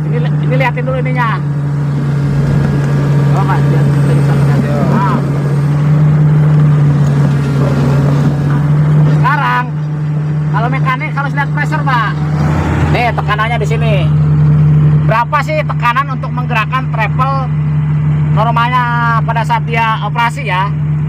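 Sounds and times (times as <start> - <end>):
diesel engine humming: 0.0 - 21.0.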